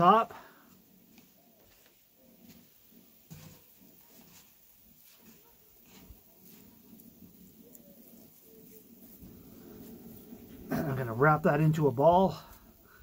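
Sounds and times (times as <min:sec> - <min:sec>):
meat squishing by hand: 0:00.7 - 0:11.1.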